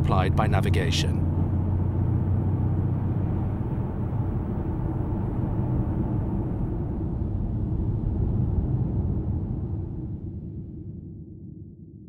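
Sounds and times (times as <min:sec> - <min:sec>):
car driving rumble: 0:00.0 - 0:10.0.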